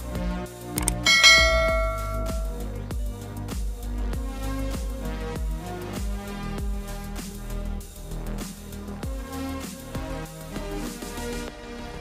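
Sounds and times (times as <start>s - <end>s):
background music with beat: 0.0s - 12.0s
bell ding ringing: 0.8s - 2.6s.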